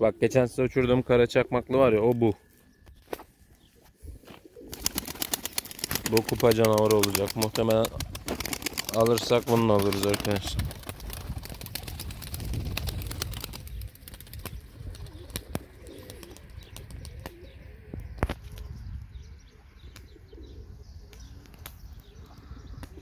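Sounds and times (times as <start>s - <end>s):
pigeons cooing: 3.6s - 11.8s, 12.9s - 18.9s, 19.6s - 23.0s
pigeon wings flapping: 4.5s - 17.4s.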